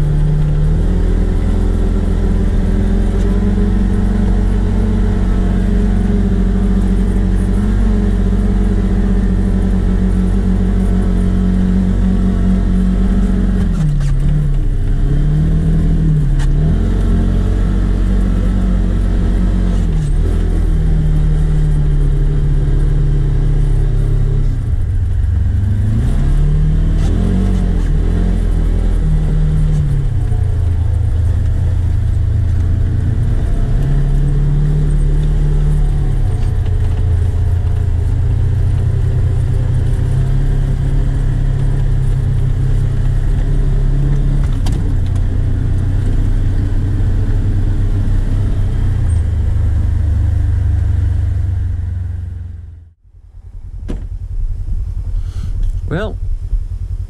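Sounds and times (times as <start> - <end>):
quad bike engine running: 0.0 - 52.8.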